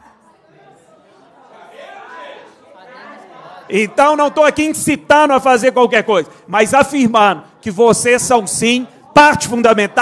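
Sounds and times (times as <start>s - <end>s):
murmur of people chattering: 0.0s - 10.0s.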